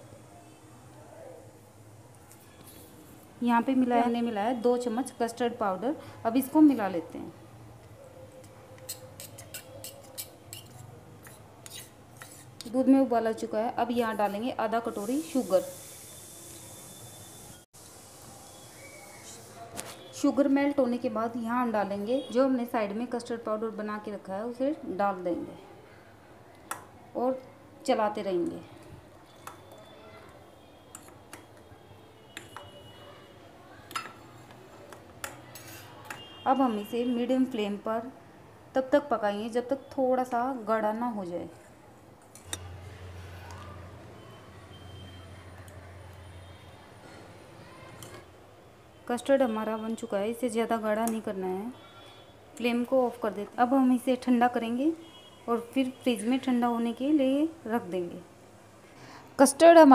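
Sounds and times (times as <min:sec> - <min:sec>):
metal spoon scraping steel bowl: 0:08.8 - 0:12.8, 0:30.9 - 0:31.4, 0:35.5 - 0:36.2.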